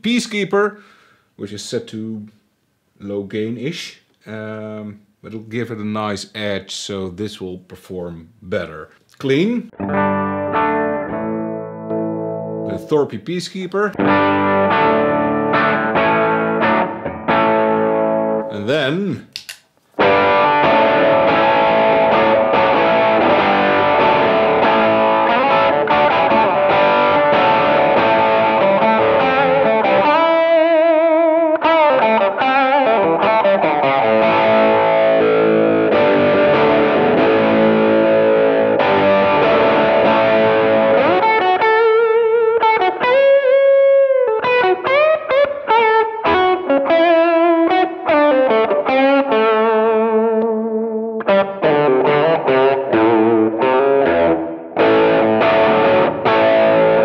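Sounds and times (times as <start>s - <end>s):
lightly driven electric guitar: 9.7s - 13.0s, 13.9s - 19.4s, 20.0s - 57.0s.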